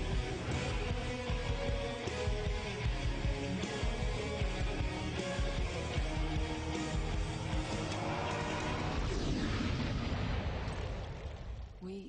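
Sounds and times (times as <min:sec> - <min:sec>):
trailer music: 0:00.0 - 0:11.7
noisy rumble of sound effects: 0:07.8 - 0:12.0.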